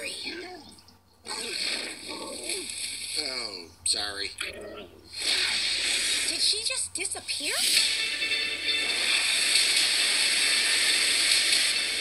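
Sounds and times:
orchestral trailer music: 7.6s - 12.0s.

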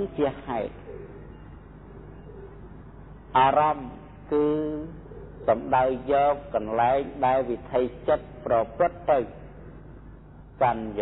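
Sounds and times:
man speaking: 0.0s - 0.8s, 3.4s - 9.5s, 10.6s - 11.0s
faint low cooing bird call: 0.0s - 10.2s.

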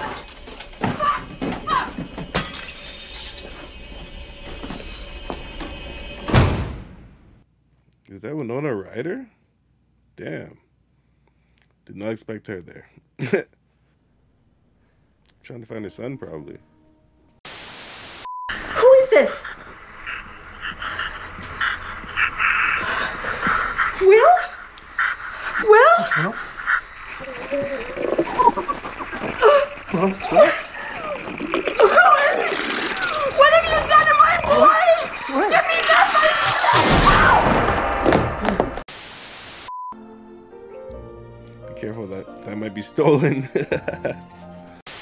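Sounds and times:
film soundtrack music: 15.3s - 17.4s, 39.9s - 44.8s
crashes and breaking objects: 35.8s - 38.8s.

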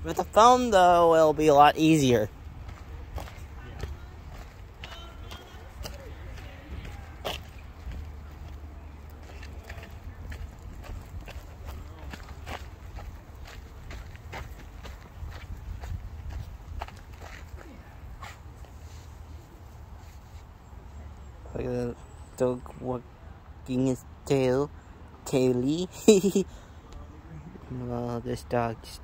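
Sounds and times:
footsteps crunching on dirt path: 0.0s - 19.2s.

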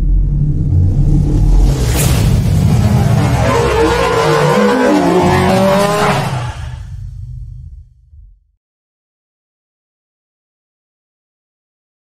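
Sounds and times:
rising and falling pitch sweeps: 0.0s - 6.9s
deep rumble: 0.0s - 8.6s.

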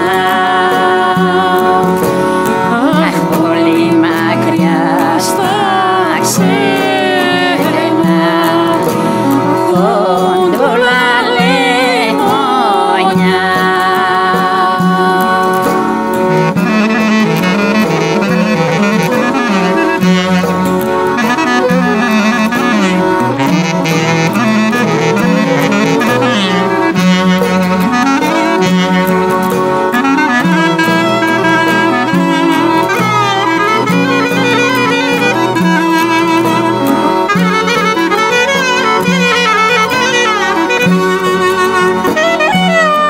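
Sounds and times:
clarinet melody: 0.0s - 43.0s
held accompaniment: 0.0s - 43.0s.

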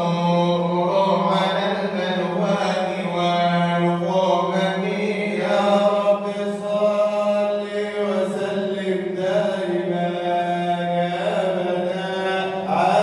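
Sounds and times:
man chanting through a microphone: 0.0s - 13.0s.

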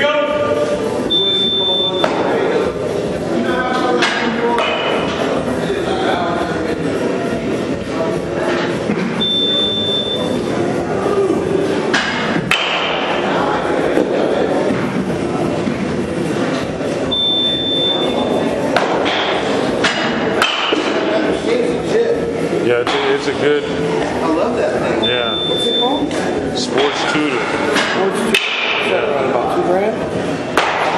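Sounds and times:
indistinct background voices: 0.0s - 30.9s
thin steady beep: 1.1s - 2.0s, 9.2s - 10.4s, 17.1s - 18.2s, 25.0s - 26.1s.

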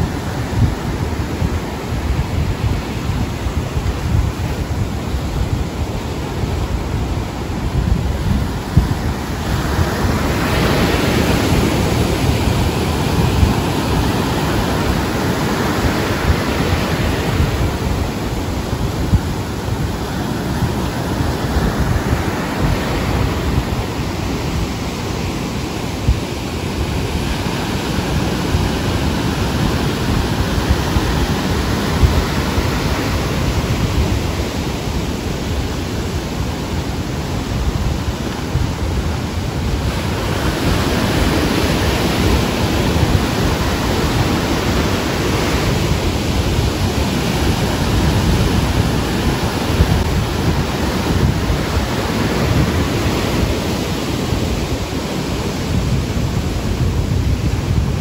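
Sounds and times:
ocean waves breaking on beach: 0.0s - 58.0s.

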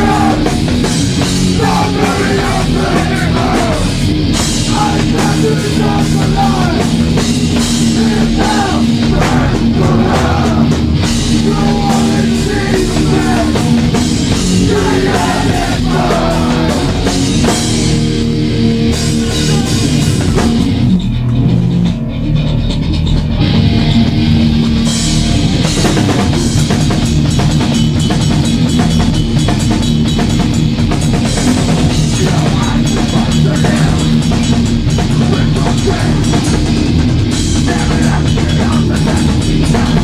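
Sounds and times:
punk band playing loud: 0.0s - 40.0s.

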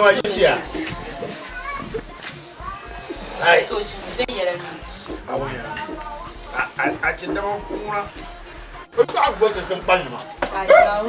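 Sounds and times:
background music: 0.0s - 11.0s
voices speaking: 0.0s - 11.0s.

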